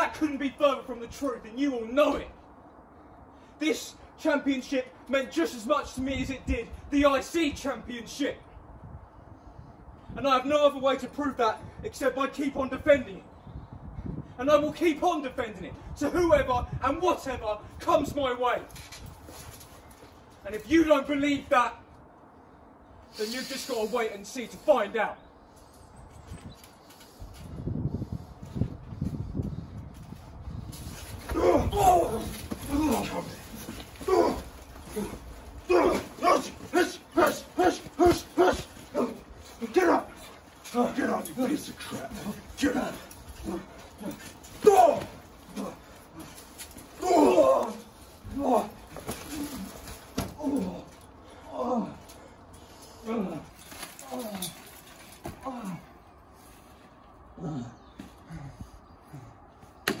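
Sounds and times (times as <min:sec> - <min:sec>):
man groaning in pain: 0:31.3 - 0:33.4, 0:34.0 - 0:36.7, 0:42.0 - 0:45.9, 0:47.0 - 0:49.7, 0:50.3 - 0:52.1.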